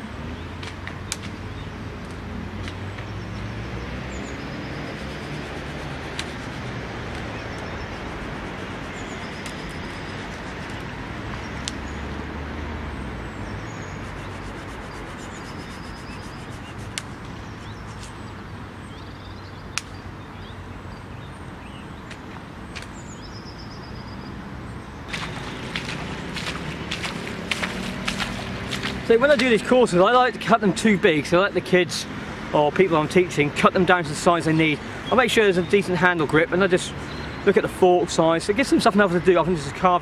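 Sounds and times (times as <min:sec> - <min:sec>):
distant road traffic: 0:00.0 - 0:40.0
bird chirps: 0:13.4 - 0:22.1
footsteps through waterlogged grass: 0:25.1 - 0:30.0.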